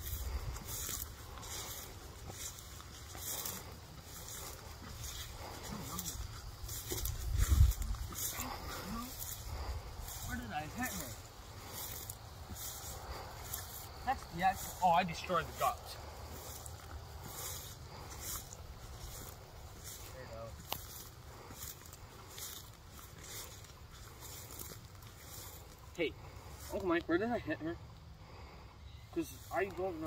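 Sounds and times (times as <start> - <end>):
grass rustling: 0.0 - 30.0
wind rumble on microphone: 6.7 - 8.4.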